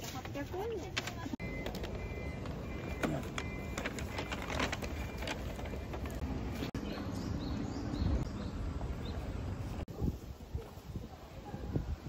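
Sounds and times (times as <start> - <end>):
low rumble of traffic: 0.0 - 12.0
short high beeps: 1.4 - 3.8.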